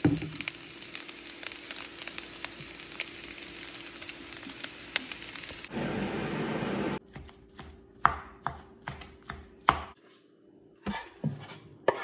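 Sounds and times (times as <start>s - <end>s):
rice sizzling in frying pan: 0.0s - 5.7s.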